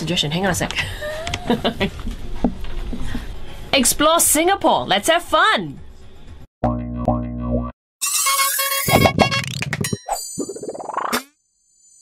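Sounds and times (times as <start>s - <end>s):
buzzy low tone: 6.6s - 7.7s.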